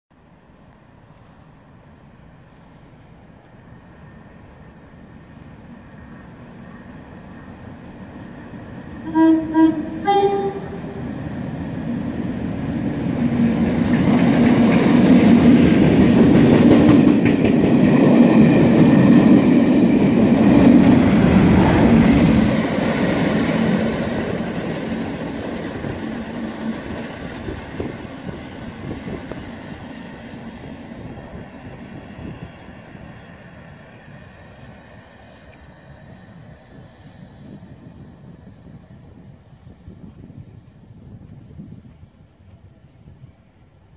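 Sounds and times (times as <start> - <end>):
diesel locomotive engine: 0.2 - 43.9
locomotive horn: 9.0 - 11.1
train wheels clattering: 13.4 - 24.0.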